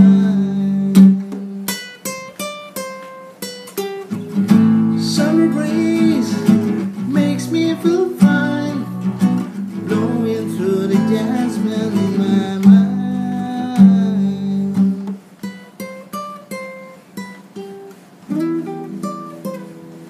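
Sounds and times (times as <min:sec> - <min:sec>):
plucked guitar notes: 0:00.0 - 0:20.0
strummed guitar chords: 0:00.0 - 0:20.0.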